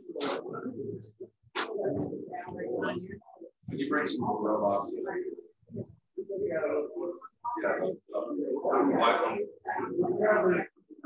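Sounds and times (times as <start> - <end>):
muffled voices talking: 0.0 - 11.0.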